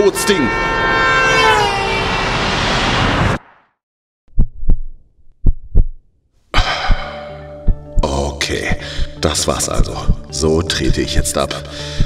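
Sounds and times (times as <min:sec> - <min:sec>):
loud horn blaring: 0:00.0 - 0:03.4
traffic noise: 0:00.0 - 0:03.4
cartoon heartbeat thuds: 0:04.3 - 0:06.0, 0:06.6 - 0:08.1.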